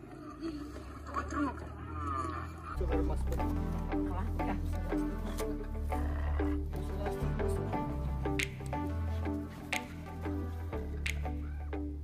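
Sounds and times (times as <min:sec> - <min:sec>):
steady low bass: 0:02.8 - 0:12.0.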